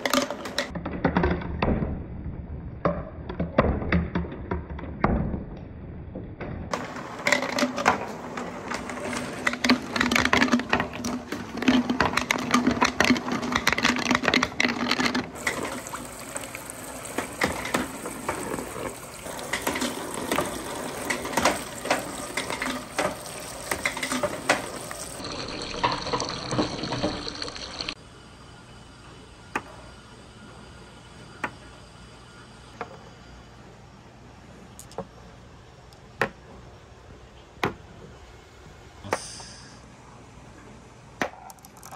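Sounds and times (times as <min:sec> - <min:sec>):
balls clattering down track: 0:06.7 - 0:28.0.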